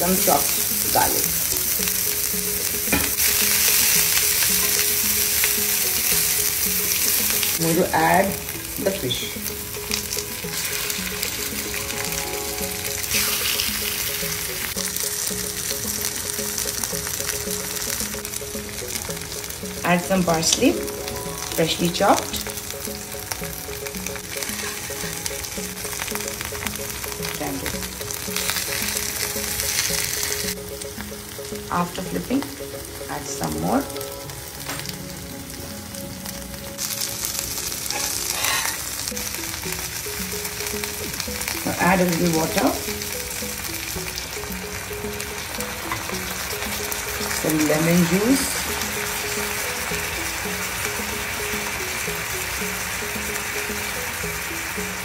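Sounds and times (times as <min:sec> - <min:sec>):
background music: 0:00.0 - 0:55.0
fish sizzling in oil: 0:00.0 - 0:55.0.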